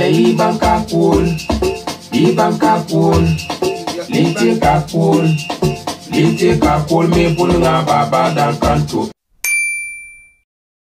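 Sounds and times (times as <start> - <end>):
music: 0.0 - 9.2
bright bell ding: 9.4 - 10.4.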